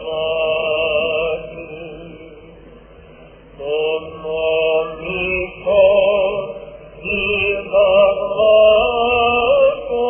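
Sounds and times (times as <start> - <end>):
man chanting a hymn: 0.0 - 2.5, 3.6 - 10.0.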